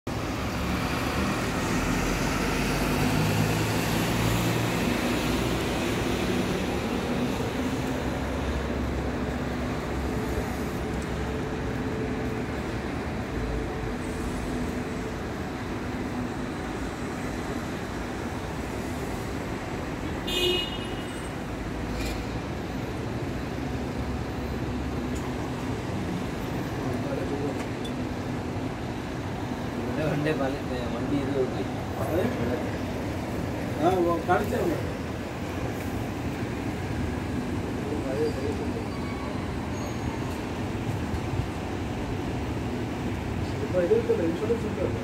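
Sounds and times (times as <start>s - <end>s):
city street traffic: 0.0s - 45.0s.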